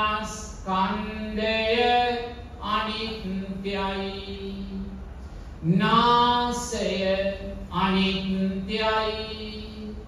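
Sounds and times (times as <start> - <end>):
man chanting: 5.6 - 10.0.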